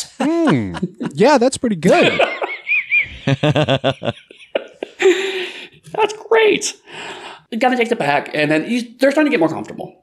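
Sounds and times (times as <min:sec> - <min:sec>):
person laughing: 0:00.0 - 0:05.5.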